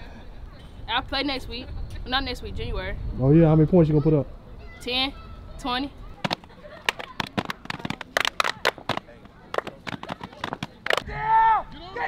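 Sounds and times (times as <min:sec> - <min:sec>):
gloved hands clapping and slapping: 0:06.2 - 0:11.0.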